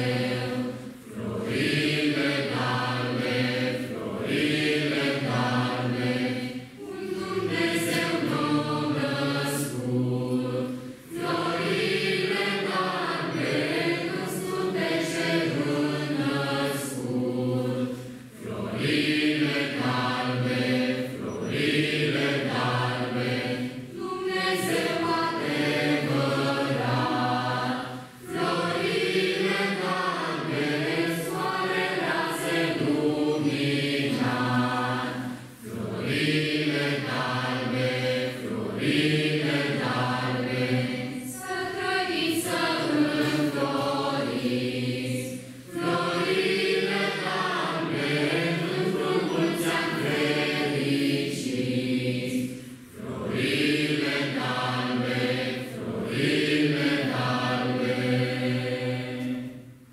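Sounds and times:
group of voices singing: 0.0s - 59.9s.

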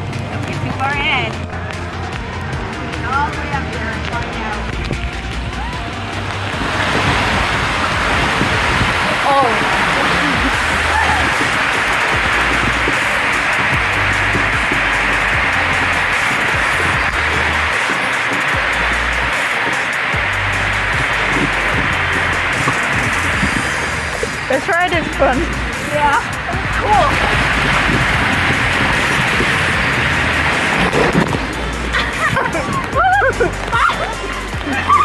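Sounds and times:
background music with bass line: 0.0s - 35.0s
rushing water and air: 0.0s - 35.0s.

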